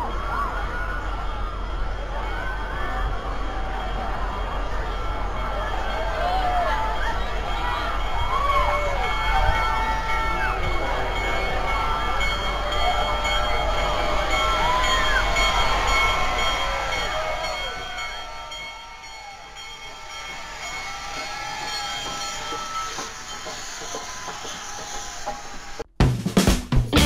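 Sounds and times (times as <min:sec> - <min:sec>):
crowd cheering and shouting: 0:00.0 - 0:25.9
steam locomotives rumbling past: 0:00.0 - 0:25.9.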